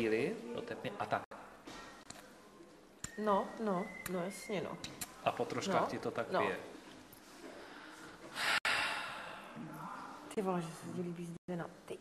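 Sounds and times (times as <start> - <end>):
sharp breath through nose: 7.6 - 9.6.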